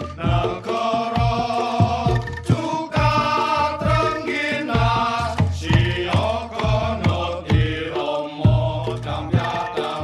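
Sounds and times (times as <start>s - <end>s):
drum strokes: 0.0s - 10.0s
held melody line: 0.0s - 10.0s.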